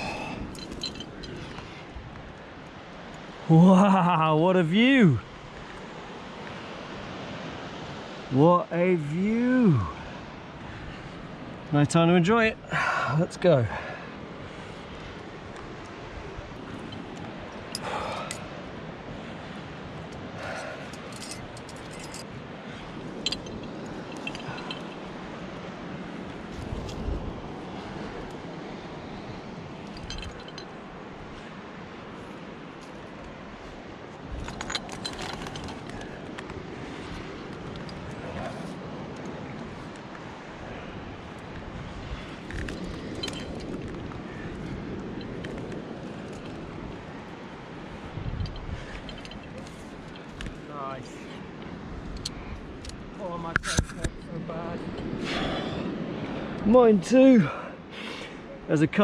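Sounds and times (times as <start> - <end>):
metal climbing gear clinking: 0.0 - 2.4, 15.0 - 18.5, 19.8 - 28.6, 29.4 - 40.2, 41.2 - 55.5.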